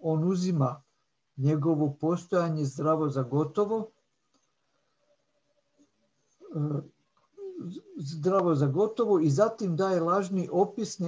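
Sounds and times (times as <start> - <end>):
man reading aloud: 0.0 - 0.8, 1.4 - 4.0, 6.4 - 11.0
man making wordless sounds: 1.4 - 3.9, 6.4 - 11.0.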